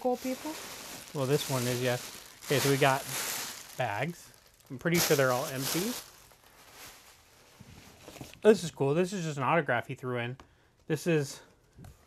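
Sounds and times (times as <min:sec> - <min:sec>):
plastic bags rustling: 0:00.0 - 0:08.4.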